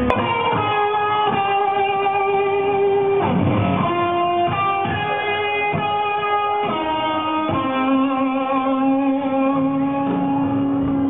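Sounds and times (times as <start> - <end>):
electric guitar long held notes: 0.0 - 11.0.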